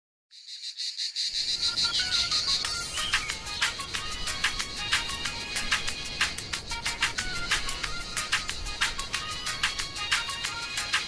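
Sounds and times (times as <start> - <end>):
crickets chirping: 0.3 - 10.7.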